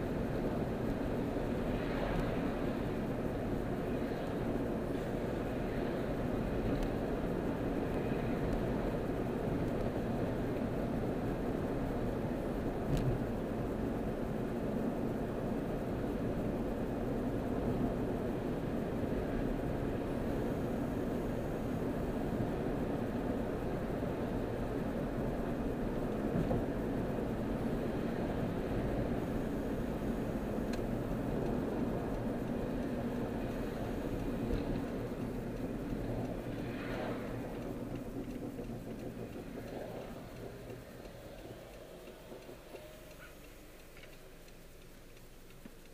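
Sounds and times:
car engine and tyre noise: 0.0s - 45.9s.

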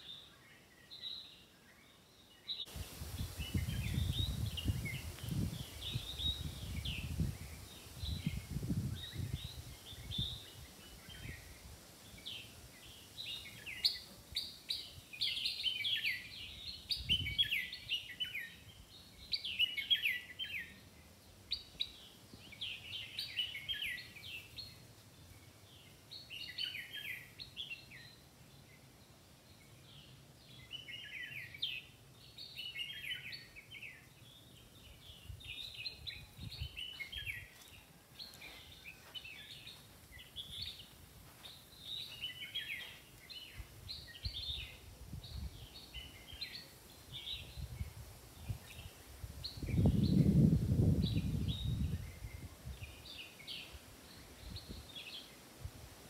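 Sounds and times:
songbirds chirping: 0.0s - 56.0s.

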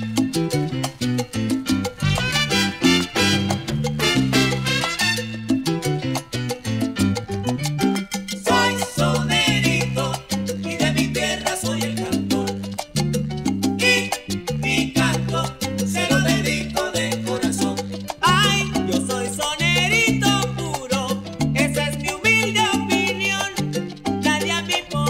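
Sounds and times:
salsa band playing: 0.0s - 25.0s.

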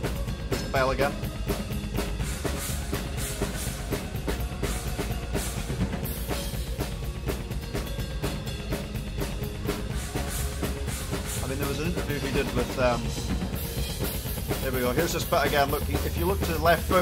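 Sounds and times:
rock drum kit fast beat: 0.0s - 17.0s
symphonic metal backing: 0.0s - 17.0s.

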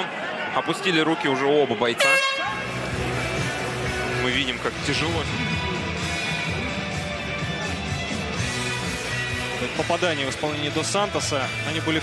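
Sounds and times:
loud horn blast: 2.0s - 2.8s
background music with bass: 2.0s - 12.0s.

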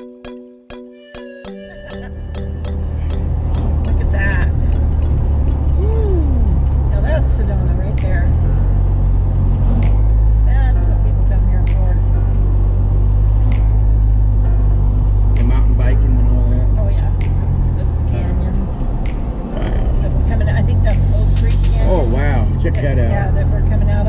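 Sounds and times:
car engine and road drone: 1.9s - 24.0s.

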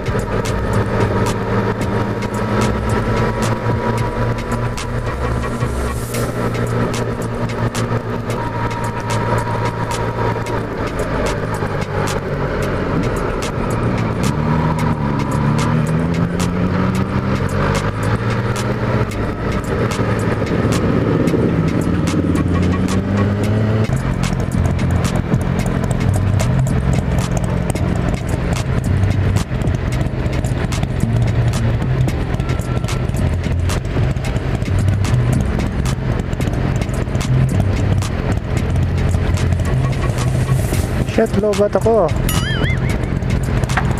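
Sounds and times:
motorcycle engine running: 0.0s - 43.9s.

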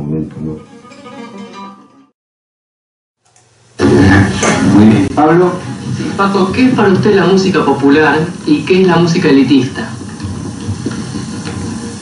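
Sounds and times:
recording hiss: 3.2s - 12.0s.

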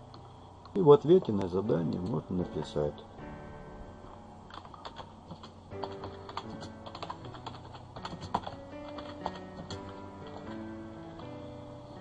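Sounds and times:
background music with held notes: 0.0s - 12.0s
keyboard typing: 0.1s - 2.8s, 4.5s - 11.6s.

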